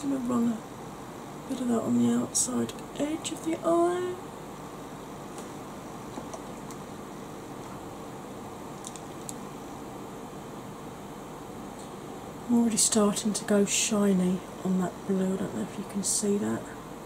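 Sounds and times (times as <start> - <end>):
background hum and hiss: 0.0 - 17.0
faint constant tone: 0.0 - 17.0.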